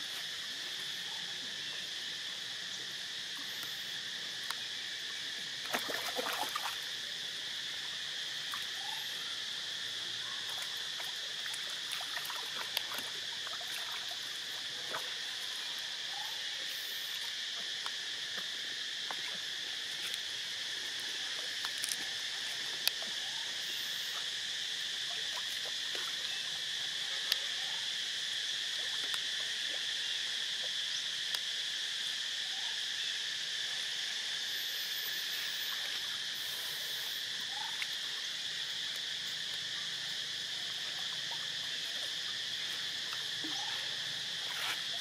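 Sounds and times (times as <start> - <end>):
insect chorus trilling: 0.0 - 45.0.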